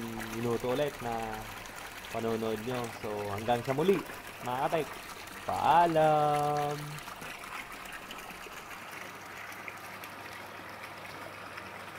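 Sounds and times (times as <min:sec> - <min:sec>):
water pouring into a tank: 0:00.0 - 0:11.9.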